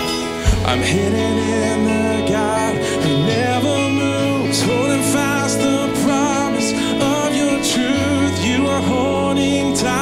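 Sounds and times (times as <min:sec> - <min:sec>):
electric bass: 0:00.0 - 0:10.0
guitar: 0:00.0 - 0:10.0.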